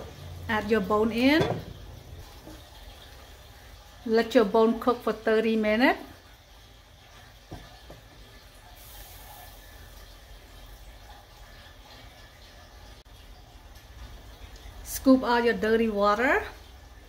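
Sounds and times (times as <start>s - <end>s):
water heating in a pot: 0.0s - 17.0s.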